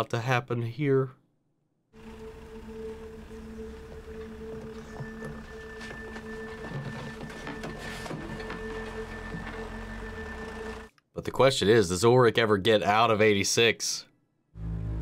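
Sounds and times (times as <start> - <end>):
low drone score: 2.0 - 10.9, 14.6 - 15.0.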